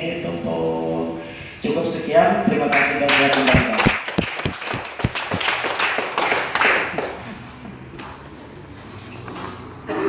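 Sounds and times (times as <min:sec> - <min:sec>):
audience clapping: 0:02.7 - 0:07.4.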